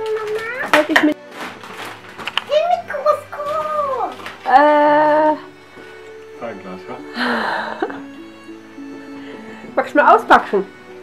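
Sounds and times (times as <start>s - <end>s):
gift-wrap paper rustling: 0.0s - 6.6s
soft background music: 0.0s - 11.0s.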